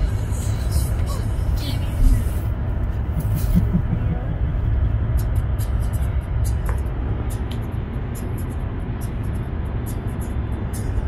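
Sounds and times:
car cabin road rumble: 0:00.0 - 0:11.0.

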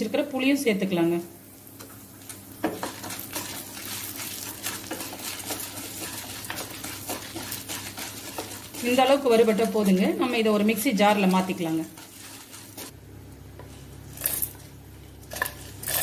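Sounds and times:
food rattling in pan: 0:02.2 - 0:12.9
spatula scraping frying pan: 0:02.6 - 0:12.9.

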